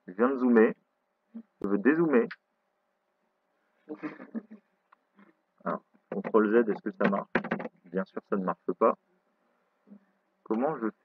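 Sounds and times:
man making wordless sounds: 0:01.4 - 0:02.4, 0:05.6 - 0:09.0, 0:10.5 - 0:11.0.

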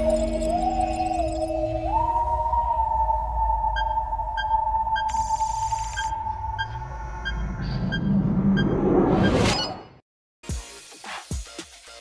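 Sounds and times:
short electronic beeps: 0:03.8 - 0:10.0.

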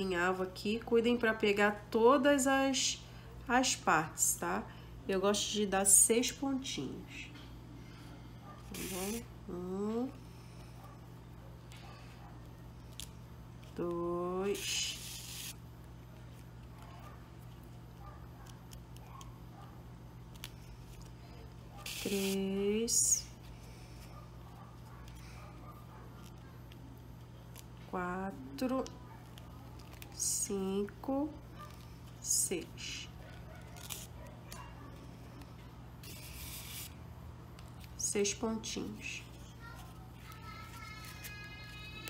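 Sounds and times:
steady low hum: 0:00.0 - 0:42.0
ribbon and thread rustling: 0:08.6 - 0:10.1, 0:20.2 - 0:25.4, 0:26.1 - 0:42.0
thread drawn through ribbon: 0:36.0 - 0:37.0.

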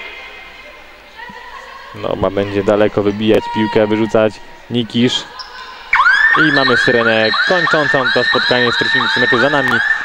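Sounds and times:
faint echoing voices: 0:00.0 - 0:10.0.

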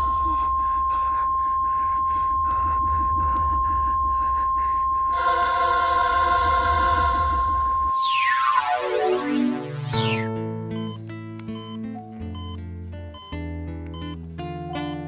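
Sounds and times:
low rumbling drone: 0:00.0 - 0:10.3
piercing high ringing tone: 0:00.0 - 0:10.3
rapid pulses: 0:01.1 - 0:10.3
choir-like voices: 0:05.1 - 0:09.6.

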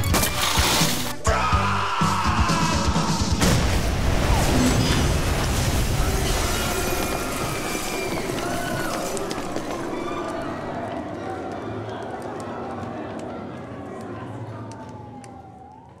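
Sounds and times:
siren wailing: 0:14.6 - 0:16.0.

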